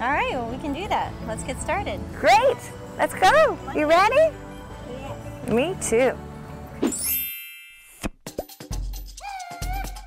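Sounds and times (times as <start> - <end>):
bright chime: 6.9 - 8.1
music with bass beat: 8.2 - 10.0.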